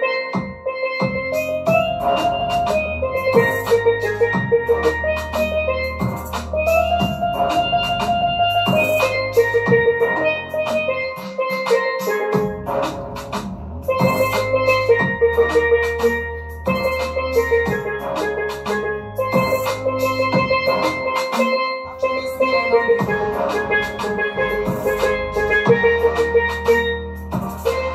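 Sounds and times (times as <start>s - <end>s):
backing track drums and bass: 0.0s - 27.9s
steelpan melody: 0.0s - 27.9s.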